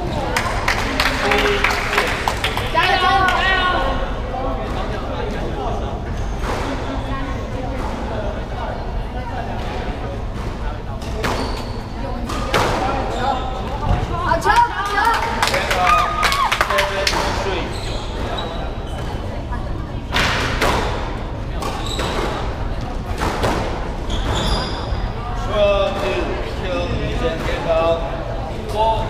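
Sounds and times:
squash ball impacts: 9.6 - 14.3, 20.1 - 24.6.

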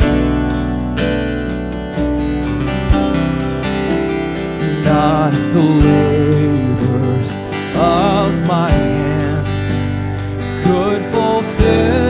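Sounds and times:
strummed acoustic guitars: 0.0 - 12.0
person singing: 4.5 - 12.0.

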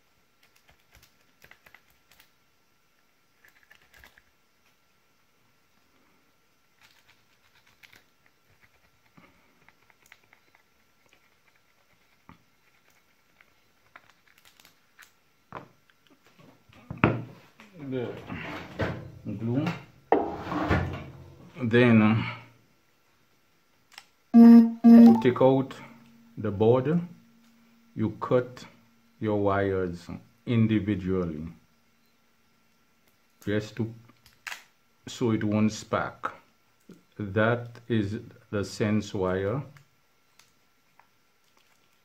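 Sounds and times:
man's voice: 24.4 - 25.8.

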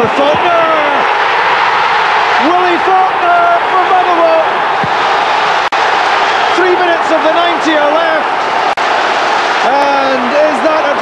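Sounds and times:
stadium crowd cheering: 0.0 - 11.0.

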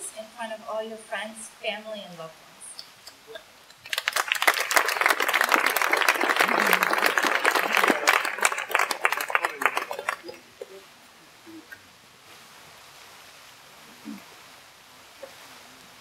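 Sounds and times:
crowd applauding: 3.8 - 10.8.

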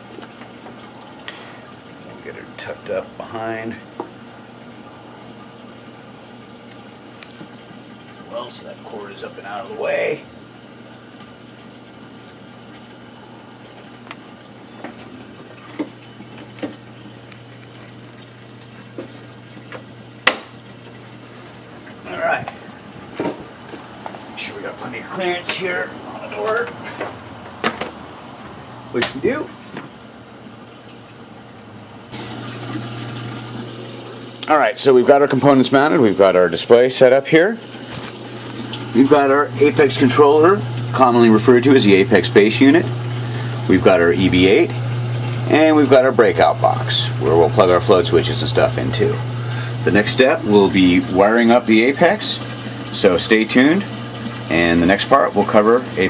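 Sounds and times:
pump humming: 0.0 - 56.0
water churning and bubbling: 0.0 - 56.0.

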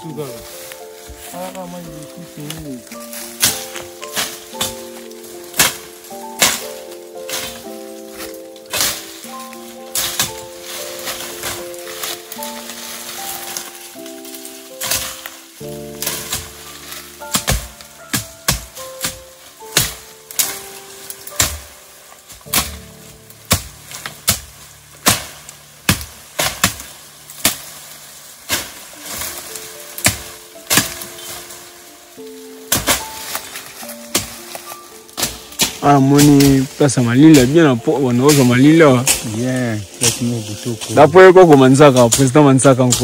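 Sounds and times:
background music with held notes: 0.0 - 43.0
dry twigs crackling and snapping: 0.0 - 43.0.

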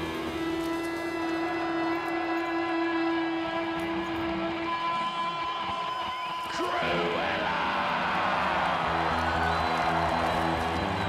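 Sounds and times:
electric guitar sustained note: 0.0 - 5.7
rock backing music: 7.9 - 11.0.

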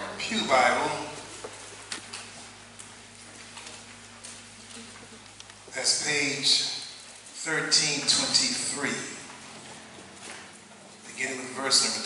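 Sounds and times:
low electrical hum and hiss: 0.0 - 12.0.

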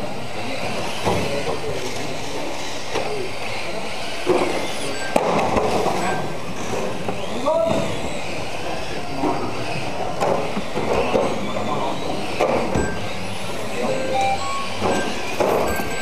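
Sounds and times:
toy car motors whining: 0.0 - 16.0
indistinct voices: 11.1 - 16.0.

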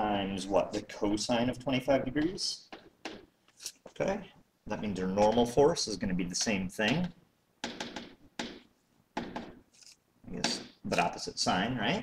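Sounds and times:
stylus tapping and scratching: 2.1 - 4.0, 4.7 - 11.2.

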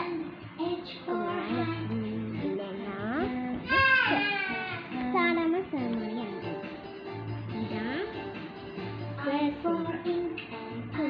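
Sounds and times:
girl chanting sing-song: 0.0 - 6.6, 9.2 - 11.0.

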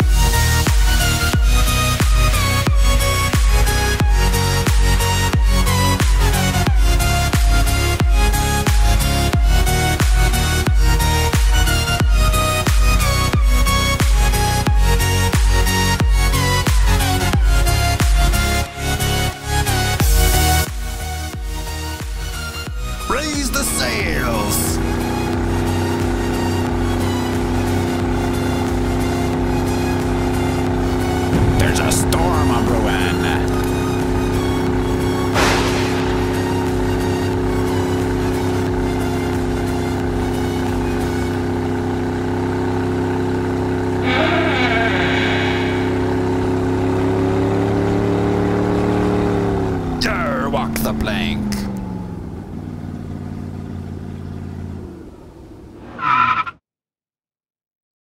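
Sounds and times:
engine running: 0.0 - 56.0.

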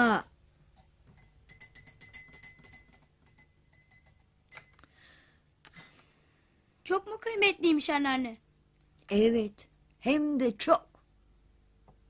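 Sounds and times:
cutlery clinking on glasses: 0.8 - 4.8.

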